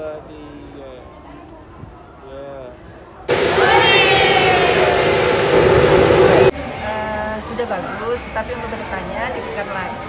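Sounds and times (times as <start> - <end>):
ship's horn blast: 3.3 - 6.5.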